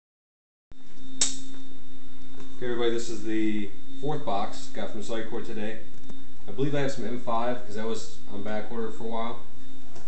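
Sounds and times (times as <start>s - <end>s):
steady low hum: 0.7s - 10.0s
sharp click: 1.2s - 1.6s.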